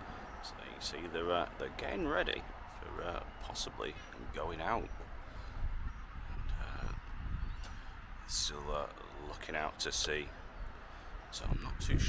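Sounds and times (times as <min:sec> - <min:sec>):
gulls calling: 0:00.0 - 0:12.0
wind buffeting microphone: 0:01.5 - 0:12.0.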